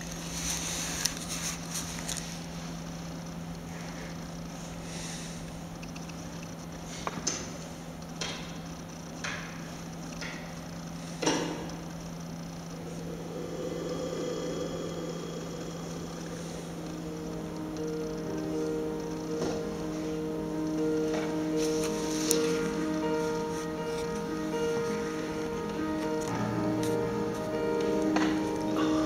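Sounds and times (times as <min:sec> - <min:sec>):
steady low hum: 0:00.0 - 0:29.0
held musical notes: 0:12.8 - 0:29.0.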